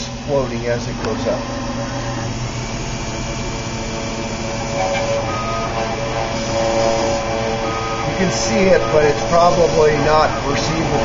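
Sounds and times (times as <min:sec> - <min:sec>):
higher motor tone: 0:00.9 - 0:11.0
engraving machine motor whirring: 0:01.0 - 0:11.0.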